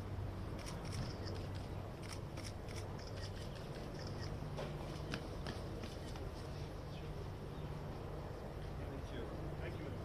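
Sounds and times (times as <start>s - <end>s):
steady low hum: 0.0s - 10.0s
camera shutters clicking: 0.6s - 4.4s.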